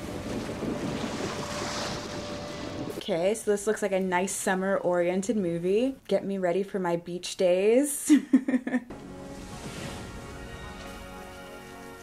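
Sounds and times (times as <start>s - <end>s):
ocean surf rushing: 0.0s - 3.0s, 8.9s - 12.0s.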